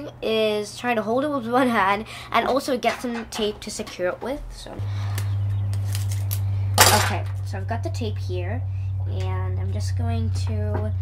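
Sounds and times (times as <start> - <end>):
steady low hum: 0.0 - 11.0
tape tearing off roll: 5.1 - 7.4.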